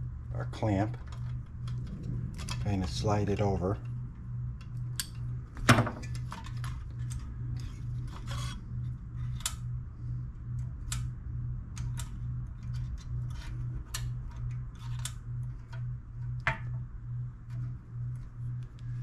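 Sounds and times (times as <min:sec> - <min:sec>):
low pulsing hum: 0:00.0 - 0:19.0.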